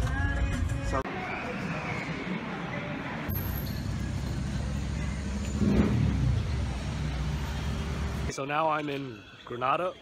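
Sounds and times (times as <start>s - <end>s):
car engine rumble: 3.3s - 8.3s.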